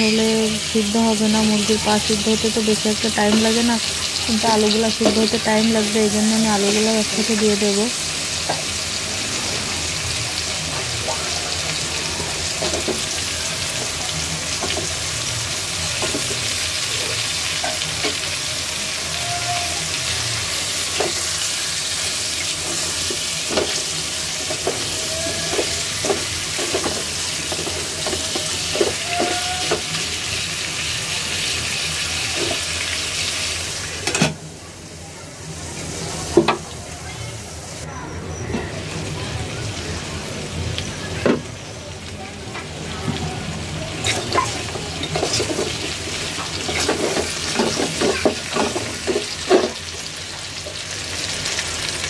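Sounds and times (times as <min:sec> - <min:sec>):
food sizzling in oil: 0:00.0 - 0:52.0.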